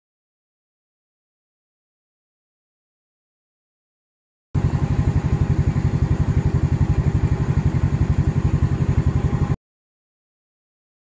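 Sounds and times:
motorcycle engine idling: 4.6s - 9.6s.

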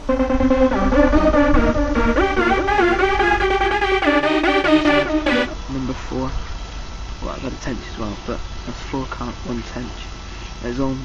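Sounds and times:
electronic dance music: 0.0s - 5.6s.

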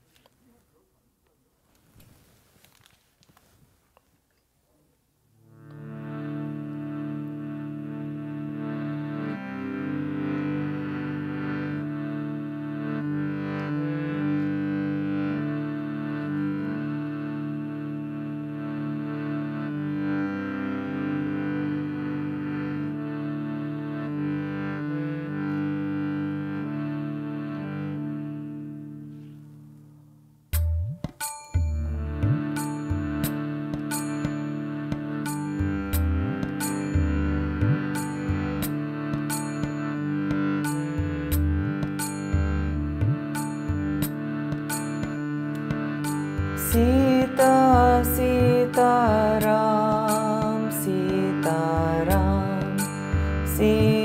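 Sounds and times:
harmonium playing chords: 5.3s - 54.0s.

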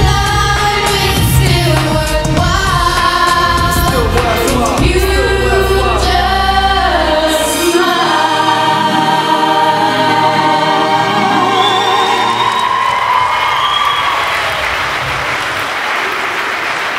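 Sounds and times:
choir singing over backing track: 0.0s - 13.1s
audience applause: 11.5s - 16.9s.

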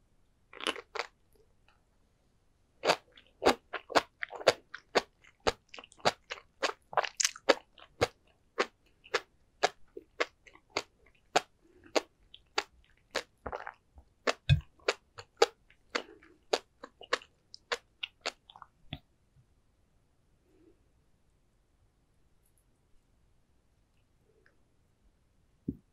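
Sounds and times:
chewing with crisp popping clicks: 2.8s - 18.7s.

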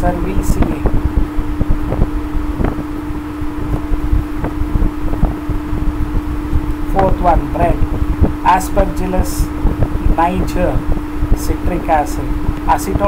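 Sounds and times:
constant hum tone: 0.0s - 13.0s
low rumble: 0.0s - 13.0s.

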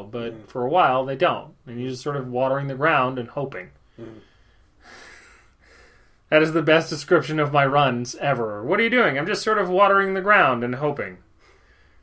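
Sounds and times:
man murmuring mm: 3.9s - 4.4s.

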